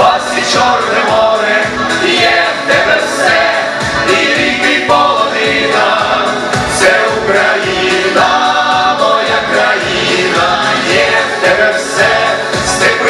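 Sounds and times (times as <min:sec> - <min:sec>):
men and women singing in harmony: 0:00.0 - 0:13.0
steady drum beat: 0:00.0 - 0:13.0.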